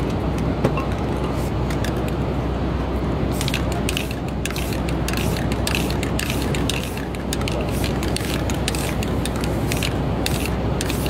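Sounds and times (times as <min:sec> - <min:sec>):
spray-paint cans hissing: 0:03.3 - 0:11.0.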